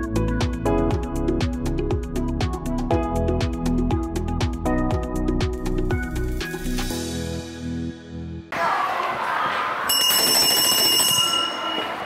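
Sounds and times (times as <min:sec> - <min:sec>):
bell ringing high tone: 0:09.9 - 0:12.0.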